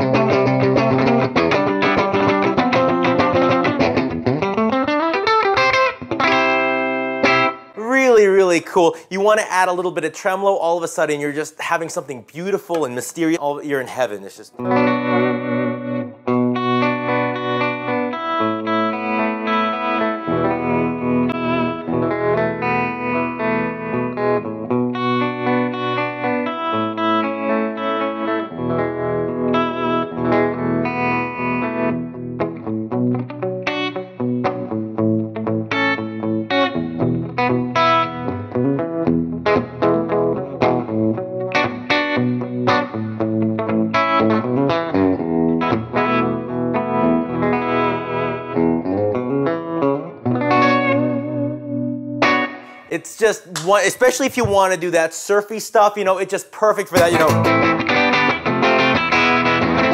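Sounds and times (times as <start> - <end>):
overdriven electric guitar: 0.0 - 7.8, 14.6 - 52.9, 56.9 - 59.9.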